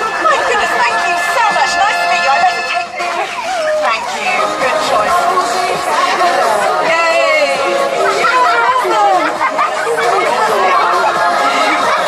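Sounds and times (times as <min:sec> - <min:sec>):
music through loudspeaker: 0:00.0 - 0:12.0
people chattering: 0:00.0 - 0:12.0.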